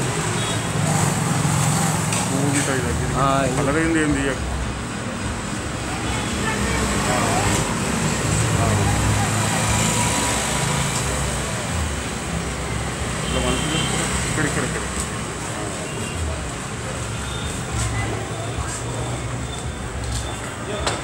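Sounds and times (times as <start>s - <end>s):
low rumble of road traffic: 0.0s - 21.0s.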